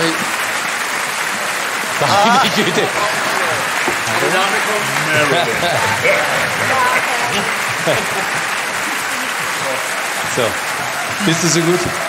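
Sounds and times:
studio audience applauding: 0.0 - 12.0.

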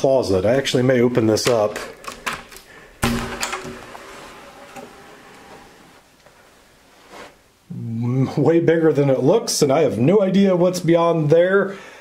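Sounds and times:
closet door thump: 3.0 - 3.9.

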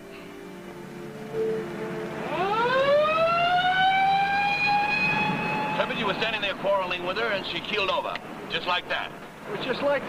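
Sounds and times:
mechanical siren wailing: 1.0 - 6.2.

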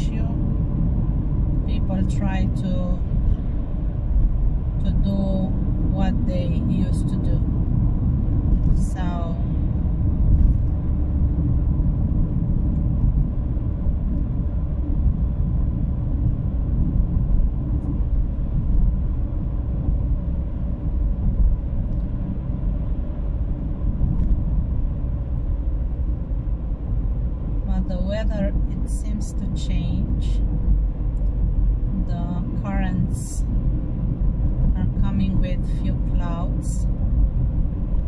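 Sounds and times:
car driving on paved road: 0.0 - 38.0.

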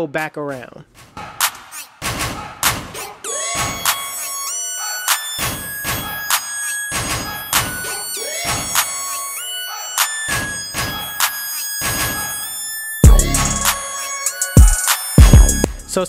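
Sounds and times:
flute-like melody: 3.2 - 16.0.

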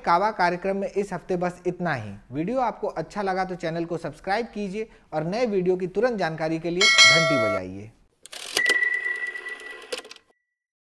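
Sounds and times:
high ringing tone: 6.8 - 7.6, 8.6 - 9.9.

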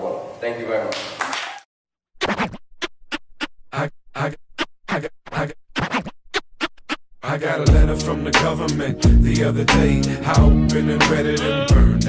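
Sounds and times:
turntable scratching: 2.2 - 7.0
hip-hop beat with heavy bass: 7.4 - 12.0.

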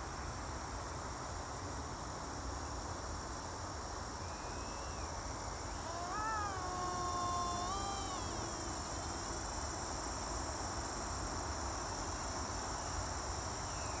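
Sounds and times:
crickets chirring: 0.0 - 14.0.

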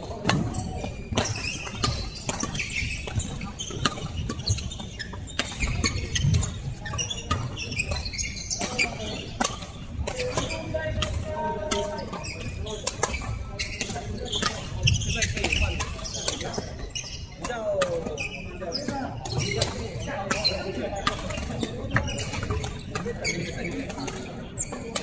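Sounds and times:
rackets hitting shuttlecock: 0.0 - 25.0
shoe squeak: 0.0 - 25.0
voices: 0.0 - 25.0.

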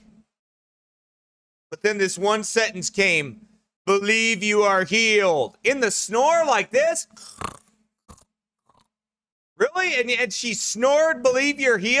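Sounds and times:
man imitating a snore: 7.2 - 7.7.

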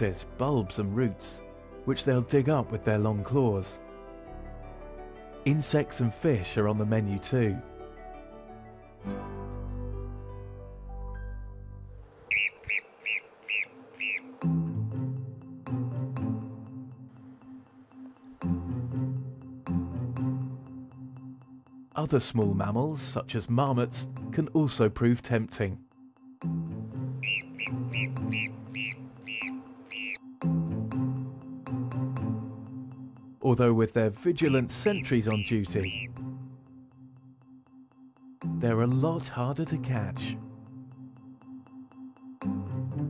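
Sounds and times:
music: 0.0 - 12.1, 13.9 - 43.0
marmot alarm calls: 12.2 - 14.4, 27.1 - 30.2, 34.4 - 36.2.

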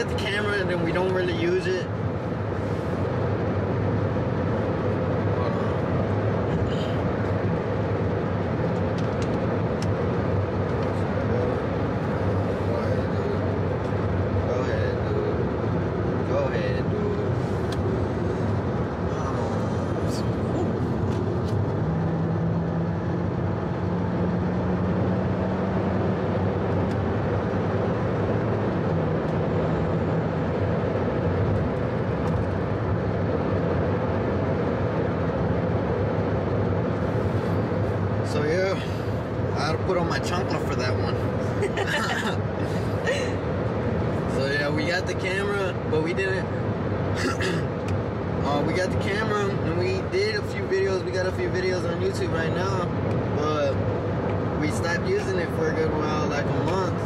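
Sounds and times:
road and engine noise in car: 0.0 - 57.0.

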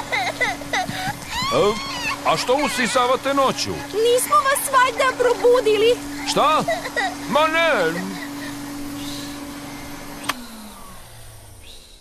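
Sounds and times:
vacuum cleaner running: 0.0 - 12.0
switch click: 10.2 - 10.4.

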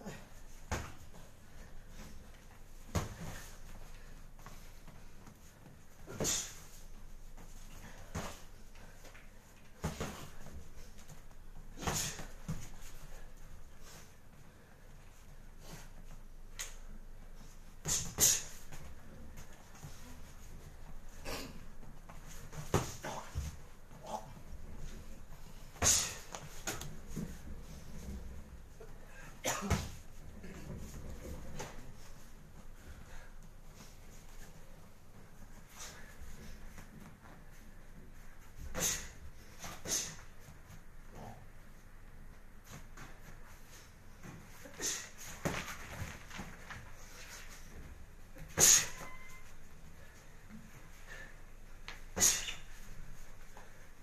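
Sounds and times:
faint gym background: 0.0 - 54.0.

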